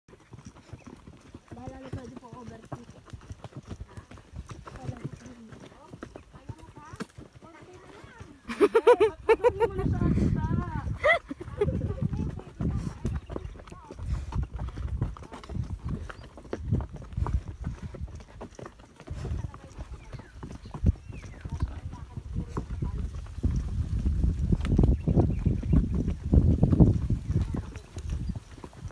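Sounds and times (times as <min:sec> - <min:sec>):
horse hooves on dirt: 0:00.1 - 0:28.9
voices talking: 0:01.5 - 0:03.0, 0:03.8 - 0:14.1, 0:19.0 - 0:23.3, 0:27.2 - 0:28.0.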